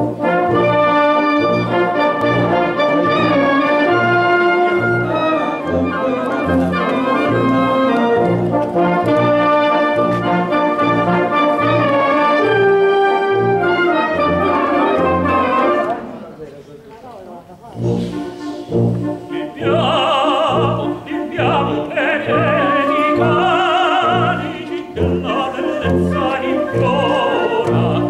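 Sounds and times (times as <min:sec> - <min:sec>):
wind band playing: 0:00.0 - 0:16.4, 0:17.6 - 0:28.0.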